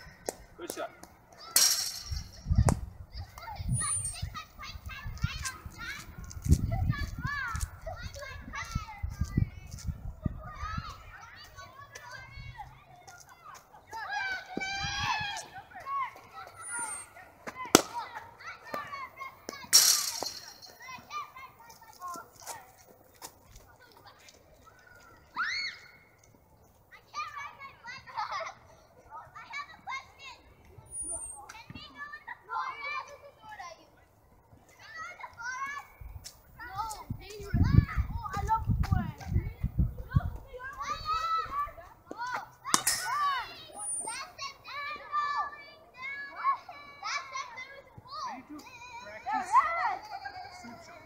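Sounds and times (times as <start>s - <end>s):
children shouting: 6.8s - 9.3s, 10.3s - 22.3s, 23.7s - 26.2s, 26.9s - 33.9s, 40.0s - 51.0s.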